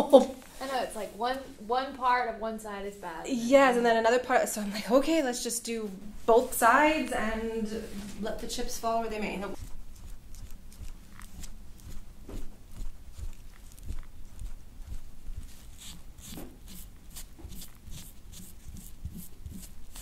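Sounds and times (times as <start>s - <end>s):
metal scraper on oiled skin: 9.4s - 20.0s.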